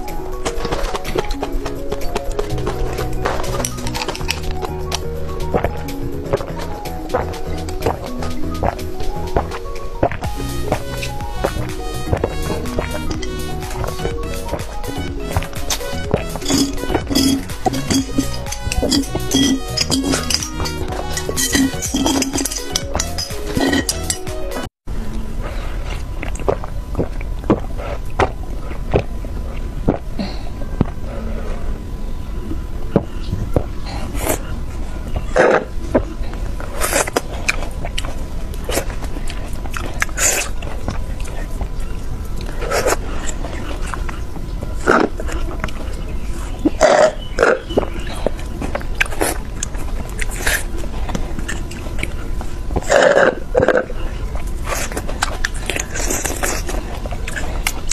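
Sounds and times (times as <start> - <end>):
low hum: 0.0 - 46.8
drinking through a straw: 0.7 - 24.7, 35.2 - 57.9.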